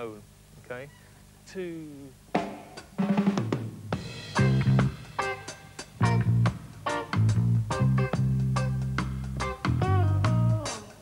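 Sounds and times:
drum kit reggae beat: 2.1s - 11.0s.

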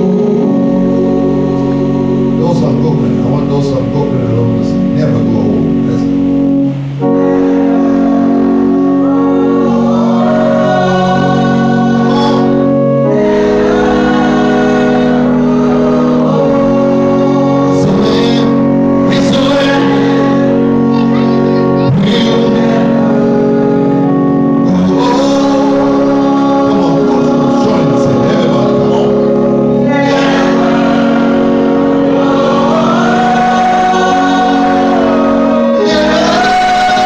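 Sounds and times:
line sliding upward in pitch: 0.0s - 37.0s
organ chord held: 0.0s - 37.0s.

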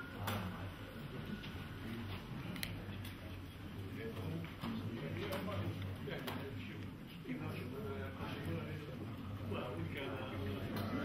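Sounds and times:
murmur of voices: 0.0s - 11.0s
steady low hum: 0.0s - 11.0s.

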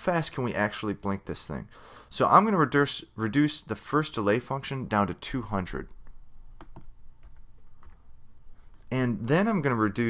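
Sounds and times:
computer keyboard keystrokes: 6.6s - 8.0s.

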